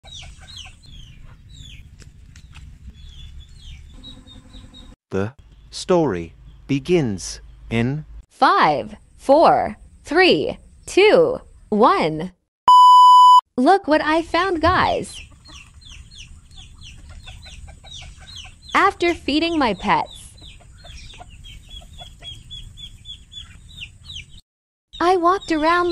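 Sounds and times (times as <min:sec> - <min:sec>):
chickens clucking: 0:00.0 - 0:01.8, 0:14.6 - 0:24.4
chicks peeping: 0:00.0 - 0:04.9, 0:14.7 - 0:24.4.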